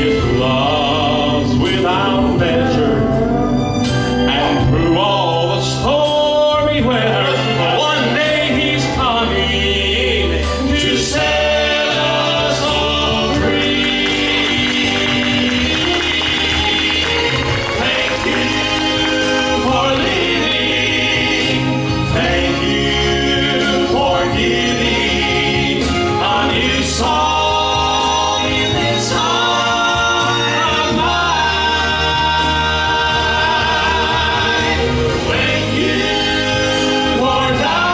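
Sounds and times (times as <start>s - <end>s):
male quartet singing in harmony: 0.0s - 37.9s.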